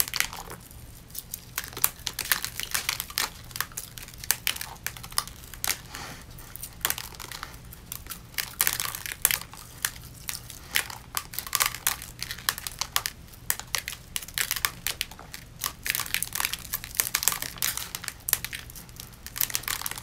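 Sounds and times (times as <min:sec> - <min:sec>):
rhinestones peeled off skin crackling: 0:00.0 - 0:20.0.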